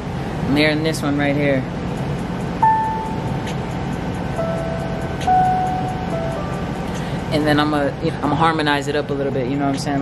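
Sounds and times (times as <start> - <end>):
steady low hum: 0.0 - 10.0
pure-toned synth notes: 2.6 - 7.0.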